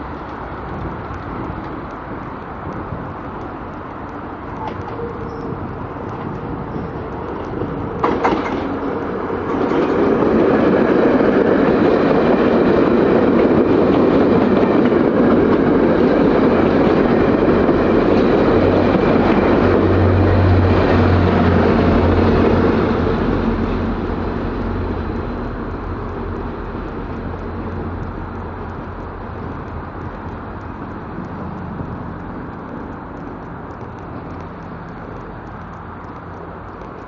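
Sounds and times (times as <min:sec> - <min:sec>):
train coaches passing at speed: 0:00.0 - 0:37.0.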